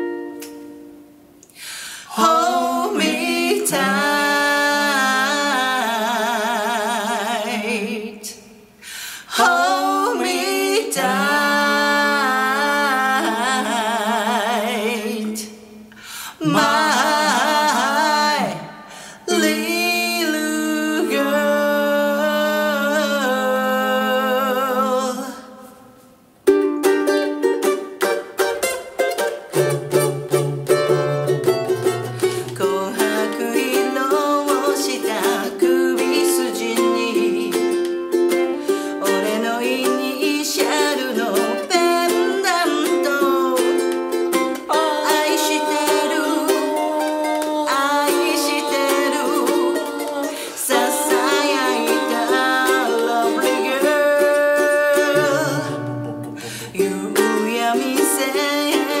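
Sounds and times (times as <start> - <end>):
ukulele strumming: 0.0 - 1.4, 2.1 - 8.0, 9.3 - 15.5, 16.4 - 18.7, 19.3 - 23.5, 26.4 - 59.0
woman singing pop song: 2.1 - 8.4, 9.2 - 15.6, 16.3 - 25.4, 32.2 - 37.8, 38.7 - 59.0.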